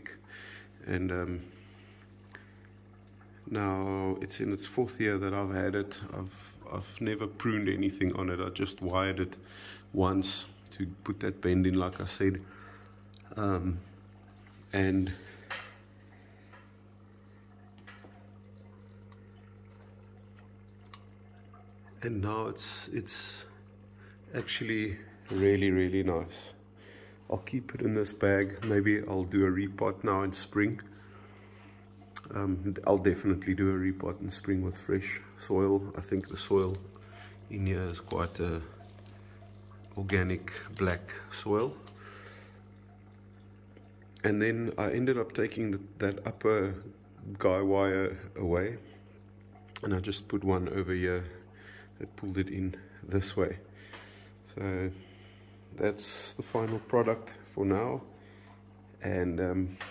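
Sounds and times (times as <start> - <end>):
aquarium air pump humming: 0.0 - 59.9
water dripping and trickling: 0.0 - 59.9.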